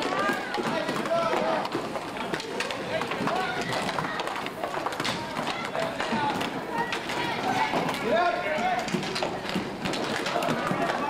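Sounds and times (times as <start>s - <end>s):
children's and onlookers' voices: 0.0s - 11.0s
hockey sticks clicking: 0.0s - 11.0s
skate wheels on wooden floor: 0.0s - 11.0s.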